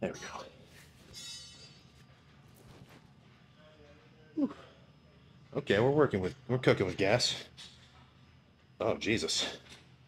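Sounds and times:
faint background music: 0:00.0 - 0:09.6.

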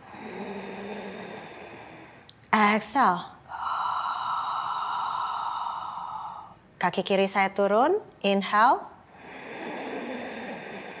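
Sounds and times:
woman breathing in: 0:00.0 - 0:02.3, 0:03.4 - 0:06.7.

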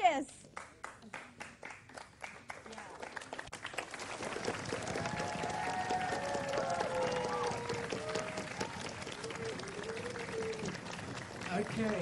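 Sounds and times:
audience applause: 0:00.8 - 0:12.0.

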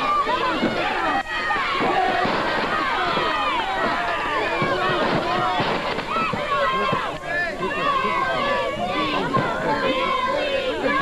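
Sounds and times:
crowd yelling and shouting: 0:00.0 - 0:11.0.

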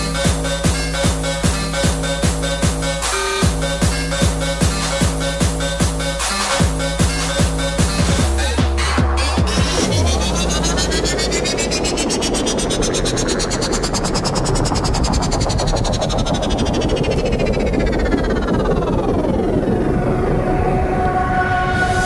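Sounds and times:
synthesizer noise sweep: 0:00.0 - 0:22.0.

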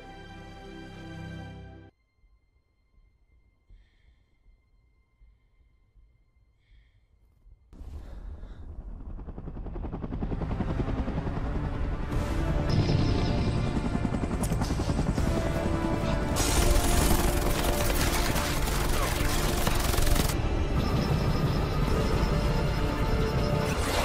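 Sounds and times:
film score: 0:00.0 - 0:24.0
helicopter rumble: 0:07.8 - 0:24.0.

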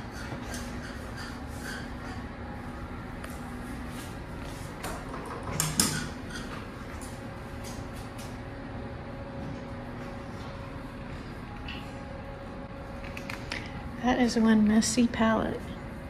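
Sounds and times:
creaking scrape: 0:00.0 - 0:02.4
steady low hum: 0:00.0 - 0:16.0.

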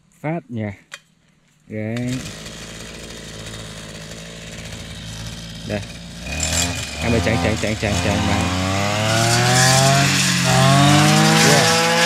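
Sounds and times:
brush cutter engine: 0:02.0 - 0:12.0.

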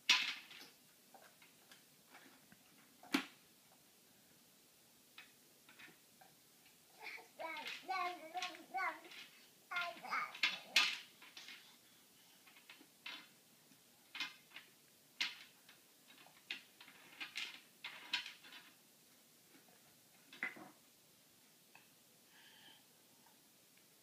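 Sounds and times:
wooden toy pieces clacking: 0:00.1 - 0:02.4, 0:07.0 - 0:11.6, 0:12.4 - 0:13.3, 0:14.1 - 0:18.8.

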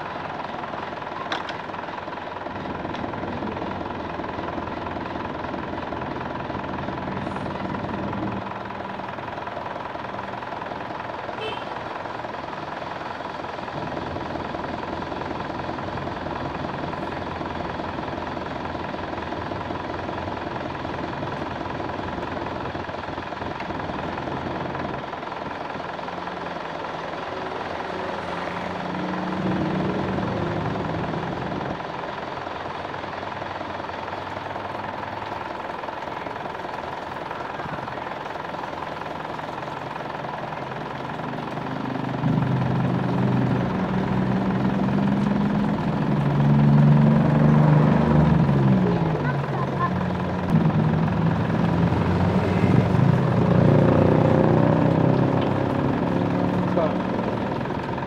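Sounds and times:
car engine running: 0:00.0 - 0:58.0.

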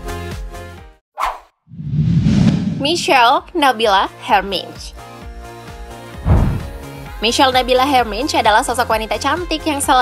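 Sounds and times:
transition whoosh: 0:01.7 - 0:03.1, 0:06.2 - 0:06.7
woman's voice: 0:02.8 - 0:05.0, 0:07.2 - 0:10.0.

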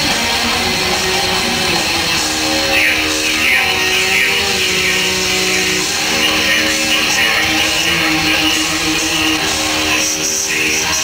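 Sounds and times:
live metal band playing: 0:00.0 - 0:11.0.

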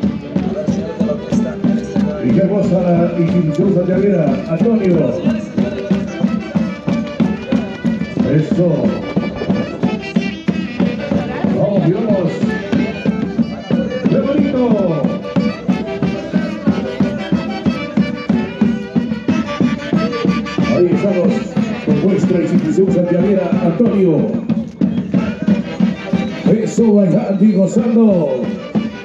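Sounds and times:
lively dance music: 0:00.0 - 0:29.0.

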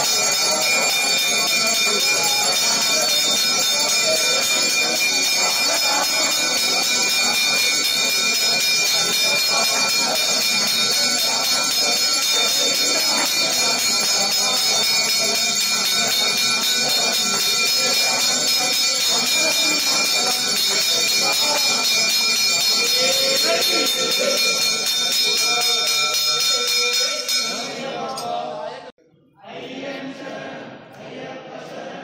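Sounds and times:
temple bells ringing: 0:00.0 - 0:28.1
crowd chanting: 0:00.0 - 0:32.0.

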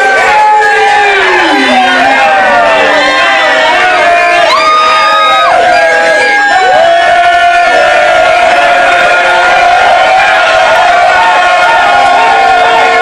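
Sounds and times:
chorus singing a sea shanty: 0:00.0 - 0:05.0
swooping shouts: 0:00.6 - 0:05.7.

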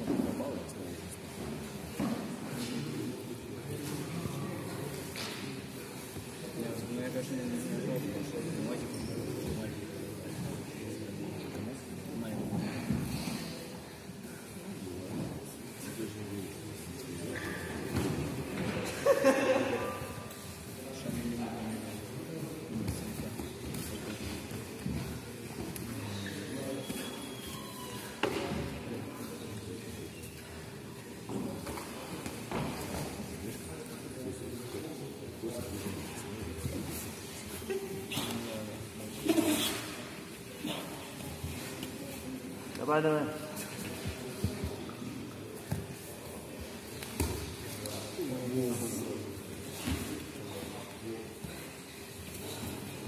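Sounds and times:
murmur of voices in a sports hall: 0:00.0 - 0:53.0.

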